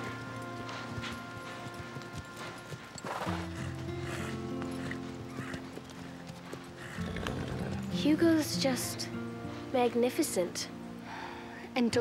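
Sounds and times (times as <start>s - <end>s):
horse hoofbeats walking: 0.0s - 9.7s
music with long held chords: 0.0s - 12.0s.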